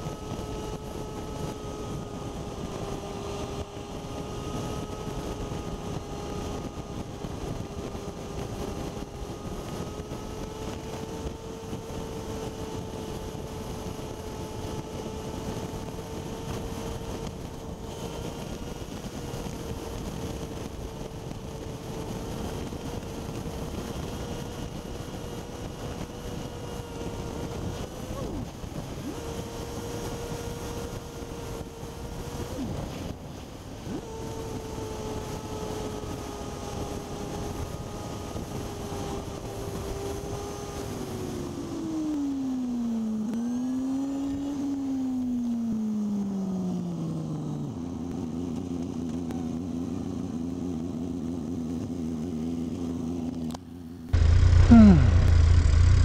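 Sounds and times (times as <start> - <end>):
motorcycle engine running: 0.0 - 41.7, 47.1 - 56.0
wind rushing over microphone: 0.0 - 42.2.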